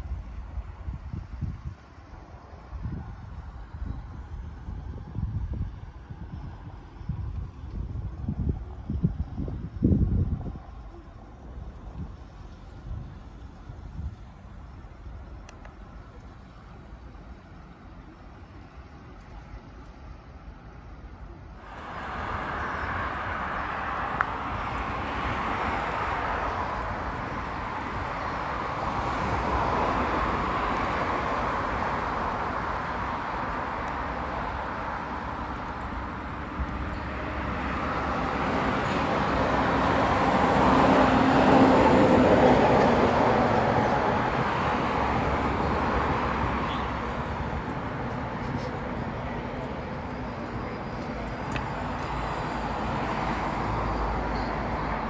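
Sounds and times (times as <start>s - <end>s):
road traffic hiss: 0.0s - 55.0s
vehicle passing: 21.6s - 55.0s.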